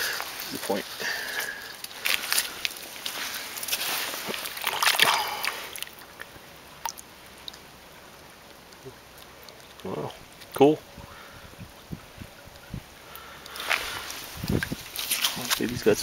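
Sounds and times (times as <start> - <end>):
creek trickling: 0.0 - 16.0
water splashing by hand: 1.4 - 7.6.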